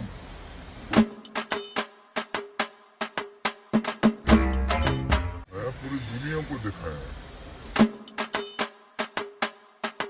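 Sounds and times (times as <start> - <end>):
steady hiss: 0.0 - 1.9, 5.5 - 8.6
drum-backed music: 0.9 - 5.5, 7.8 - 10.0.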